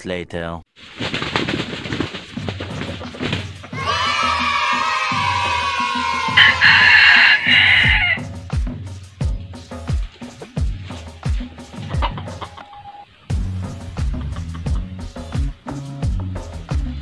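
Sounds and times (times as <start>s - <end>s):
background music with steady beat: 2.3s - 17.0s
rooster crowing: 3.8s - 8.3s.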